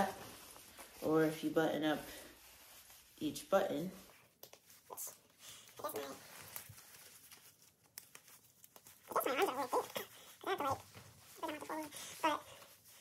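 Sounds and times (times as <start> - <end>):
nylon jacket rustling: 0.0 - 13.0.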